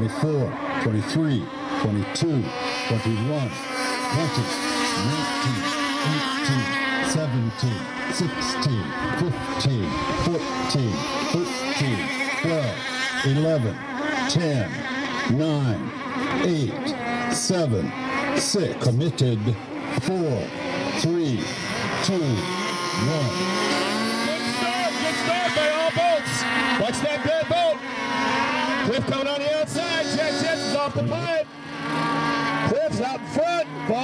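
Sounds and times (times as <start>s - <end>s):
model boat engines buzzing: 0.0s - 34.0s.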